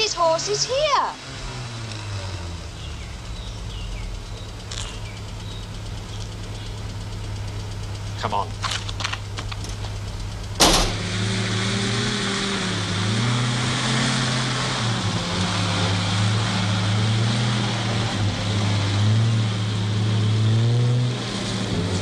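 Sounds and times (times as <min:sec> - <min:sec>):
pickup engine running: 0:00.0 - 0:22.0
sharp knock: 0:10.6 - 0:11.0.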